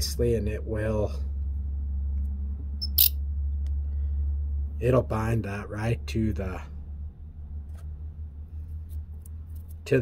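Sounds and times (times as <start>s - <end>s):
steady low hum: 0.0s - 10.0s
sharp click: 2.8s - 3.2s.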